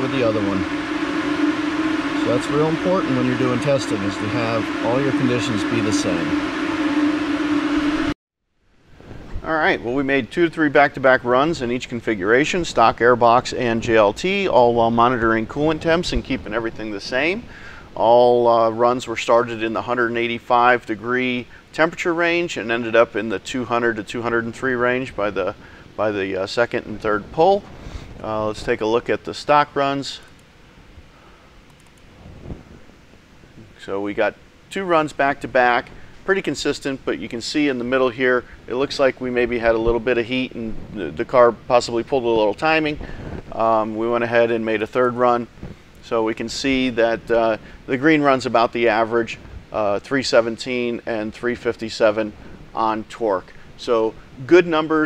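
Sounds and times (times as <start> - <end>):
low rumble and hiss: 0.0 - 7.8, 8.6 - 55.0.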